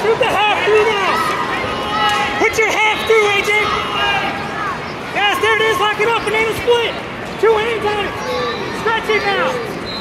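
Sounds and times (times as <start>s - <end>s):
coaches and spectators shouting: 0.0s - 10.0s
crowd chatter: 0.0s - 10.0s.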